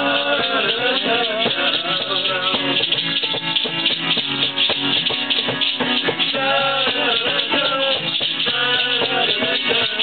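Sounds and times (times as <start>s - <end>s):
acoustic guitar strumming: 0.0s - 10.0s
tambourine jingling: 0.0s - 10.0s.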